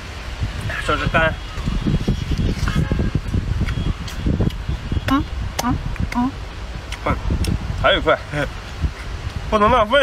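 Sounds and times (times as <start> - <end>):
wet chewing mouth noises: 3.6 - 7.6.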